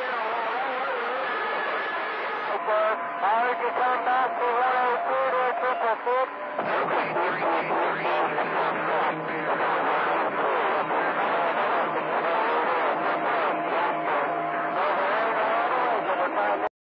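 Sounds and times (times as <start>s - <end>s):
garbled radio voices: 0.0s - 16.7s
radio noise: 0.0s - 16.7s.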